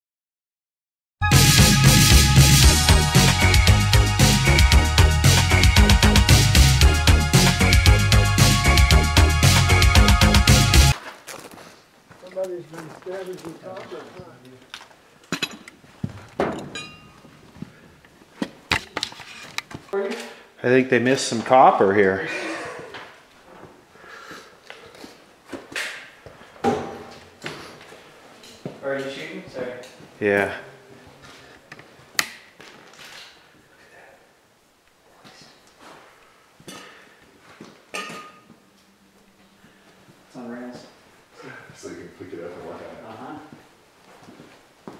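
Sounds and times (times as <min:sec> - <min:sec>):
footsteps knocking and clicking: 0:11.3 - 0:17.8.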